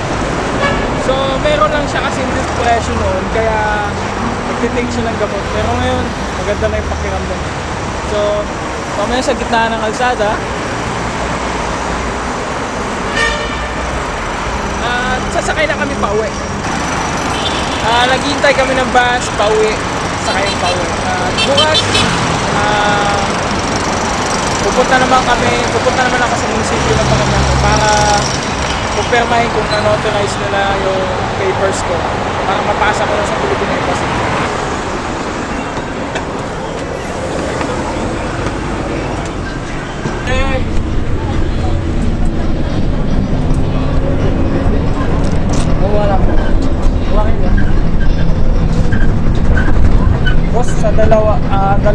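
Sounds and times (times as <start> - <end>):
road traffic: 0.0 - 51.9
vehicle horn toot: 0.6 - 1.0, 13.1 - 14.0, 17.3 - 17.9.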